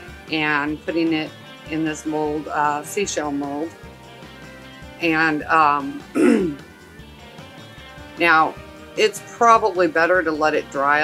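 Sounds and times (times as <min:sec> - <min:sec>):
faint background music: 0:00.0 - 0:11.0
woman clearing her throat: 0:06.1 - 0:06.6.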